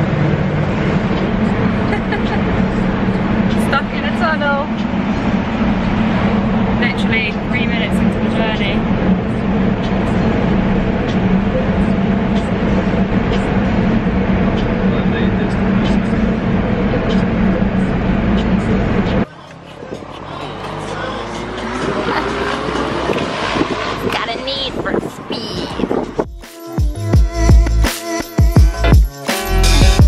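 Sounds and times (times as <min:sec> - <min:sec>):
low hum: 0:00.0 - 0:19.3
traffic drone in tunnel: 0:00.0 - 0:26.3.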